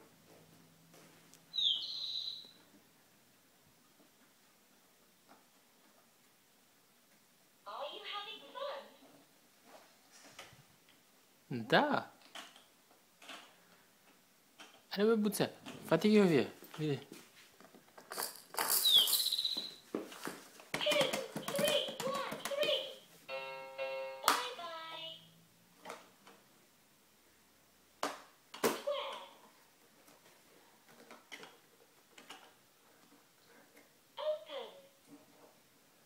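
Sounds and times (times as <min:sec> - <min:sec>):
hands tapping plastic toy: 0:20.7 - 0:22.9.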